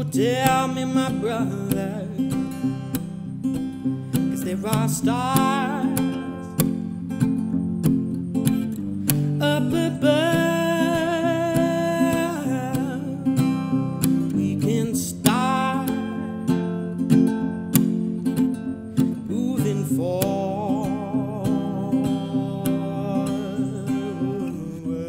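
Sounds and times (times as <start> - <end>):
man singing long notes: 0.0 - 2.9, 4.2 - 6.6, 9.4 - 16.5, 19.3 - 25.0
strummed acoustic guitar: 0.0 - 25.0.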